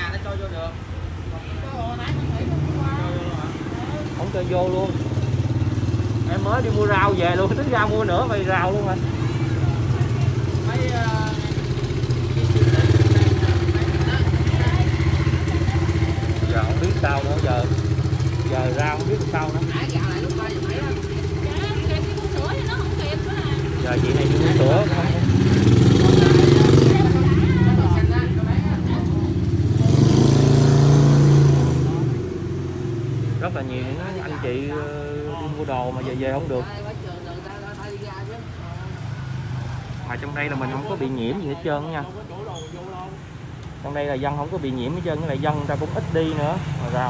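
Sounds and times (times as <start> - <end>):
people talking: 0.0 - 5.4, 6.2 - 32.4, 33.4 - 39.1
motorbike engine idling: 0.0 - 30.1.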